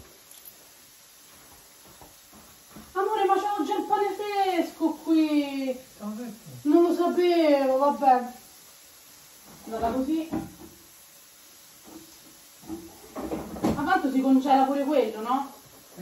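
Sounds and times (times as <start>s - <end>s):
cupboard knocks: 9.8s - 10.8s, 13.1s - 13.9s.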